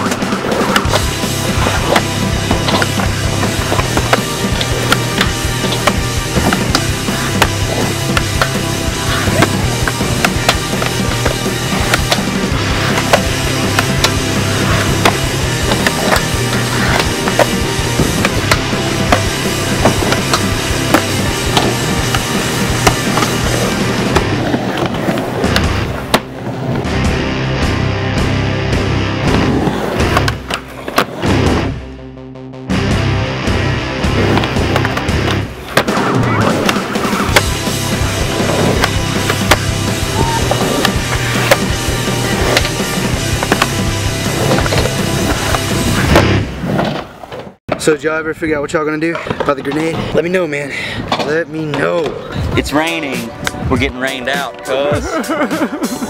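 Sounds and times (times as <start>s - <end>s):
skateboard clacks: 0.0s - 26.4s, 34.2s - 46.2s
skateboard wheels rolling on concrete: 0.0s - 31.6s, 33.4s - 56.0s
background music with beat: 0.0s - 46.2s, 52.5s - 56.0s.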